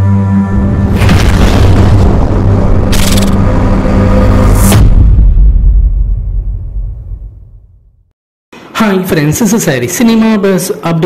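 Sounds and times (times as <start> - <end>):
low droning tone: 0.0 - 8.0
deep boom with rumble: 0.6 - 8.1.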